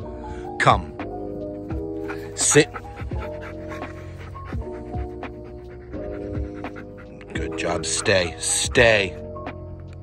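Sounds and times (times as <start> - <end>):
background music with kick drum: 0.0 - 10.0
dog panting: 1.4 - 9.2.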